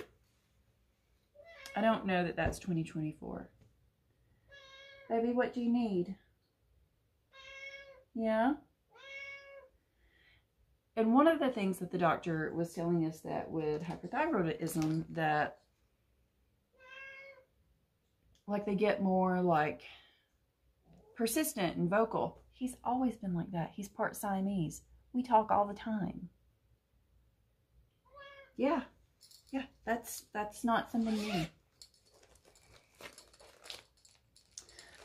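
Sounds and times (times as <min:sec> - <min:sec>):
cat meowing faintly: 0:07.3 - 0:08.0, 0:16.8 - 0:17.5, 0:28.0 - 0:28.6
cloth bag rustling: 0:30.9 - 0:35.0.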